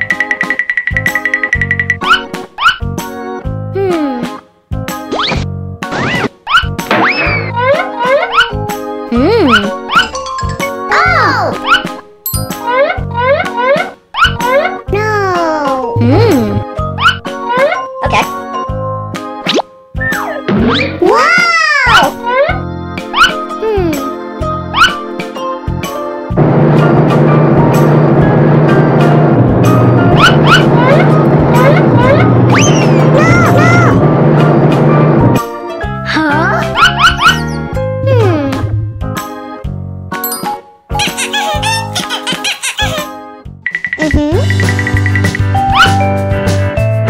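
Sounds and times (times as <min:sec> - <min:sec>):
children's music: 0:00.0 - 0:26.4, 0:27.2 - 0:34.1, 0:35.0 - 0:47.0
cartoon boings and slide whistle: 0:31.6 - 0:33.8.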